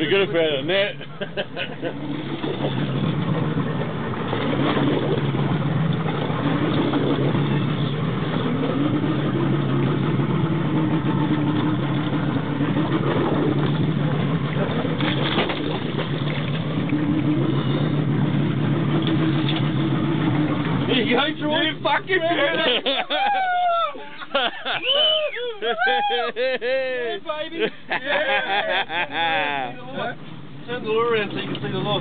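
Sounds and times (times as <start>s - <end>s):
boat motor idling: 0.0s - 32.0s.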